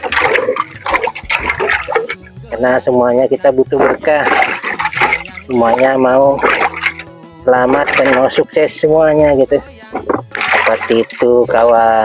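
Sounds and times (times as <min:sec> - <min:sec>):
water splashing in a metal pot: 0:00.0 - 0:12.0.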